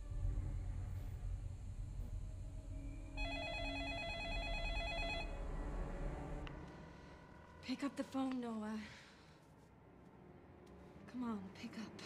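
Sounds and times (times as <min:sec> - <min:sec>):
low rumbling drone: 0:00.0 - 0:08.3
telephone ringing with warbling trill: 0:03.2 - 0:05.4.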